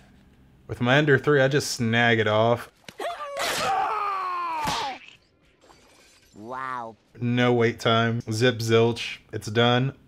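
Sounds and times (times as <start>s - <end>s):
sharp crack: 4.5s - 5.0s
cartoon hit: 4.5s - 5.1s
cartoon character voice: 6.4s - 7.0s.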